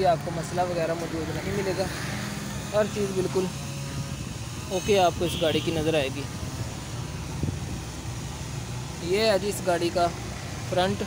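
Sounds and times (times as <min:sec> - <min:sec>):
car engines rumbling: 0:00.0 - 0:11.0
road traffic: 0:00.0 - 0:11.0.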